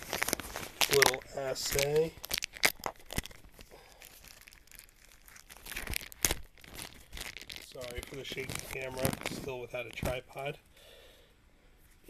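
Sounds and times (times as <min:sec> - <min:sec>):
paper packaging crinkling: 0:00.0 - 0:10.6.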